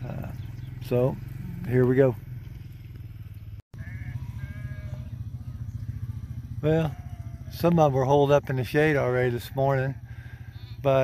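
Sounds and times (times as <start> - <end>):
distant sheep bleating: 3.8 - 11.0.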